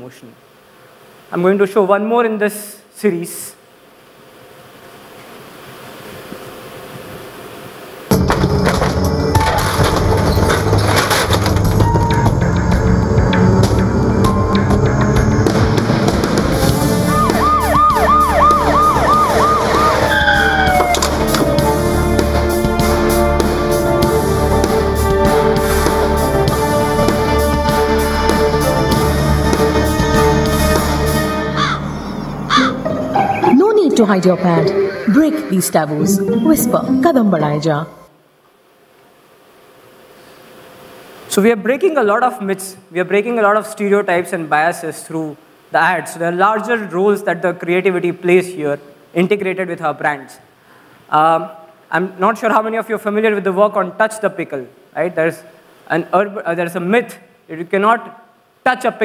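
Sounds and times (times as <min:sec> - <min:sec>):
rock music with drums: 0:08.1 - 0:31.7
crow cawing: 0:19.2 - 0:21.1, 0:31.5 - 0:33.5
faint noise: 0:32.0 - 0:59.0.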